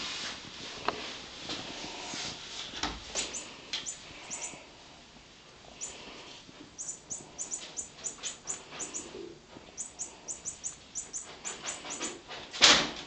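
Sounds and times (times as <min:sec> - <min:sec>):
faint rustling: 0:00.0 - 0:10.3
very high-pitched chirps: 0:03.2 - 0:04.6, 0:05.8 - 0:06.0, 0:06.8 - 0:12.2.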